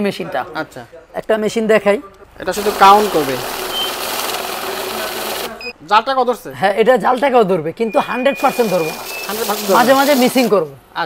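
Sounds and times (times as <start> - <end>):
banknote counting machine: 2.5 - 5.6, 8.4 - 10.5.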